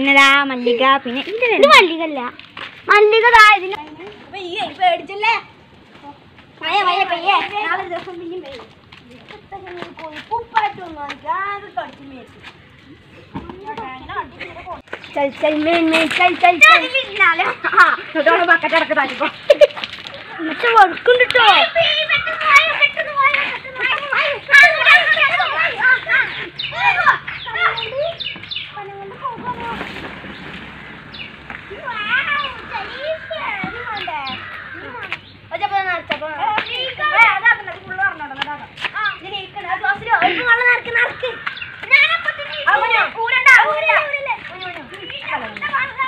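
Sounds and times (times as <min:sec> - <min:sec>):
children chattering and calling out: 0:00.0 - 0:46.0.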